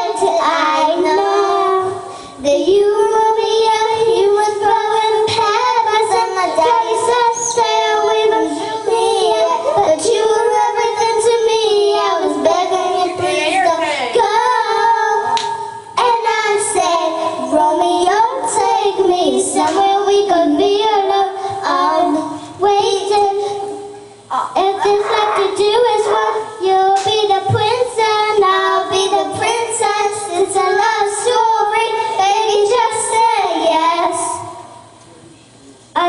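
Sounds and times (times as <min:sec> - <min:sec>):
girls singing pop song: 0:00.0 - 0:35.0.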